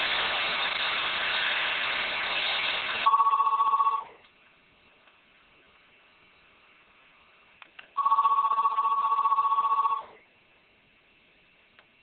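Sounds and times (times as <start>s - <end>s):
telephone electronic ringer: 3.1s - 4.1s, 8.0s - 10.2s.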